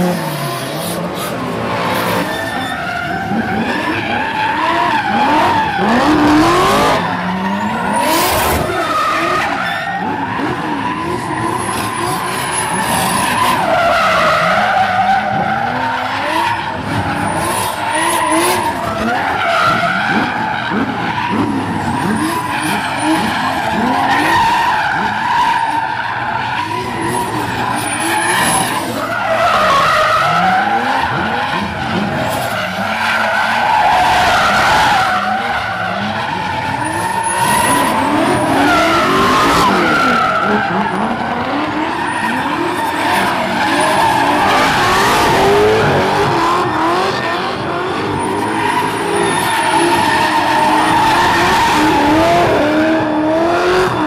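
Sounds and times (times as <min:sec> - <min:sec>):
car engines revving: 0:00.0 - 0:54.0
tyre squeal: 0:02.0 - 0:47.4, 0:48.0 - 0:52.6.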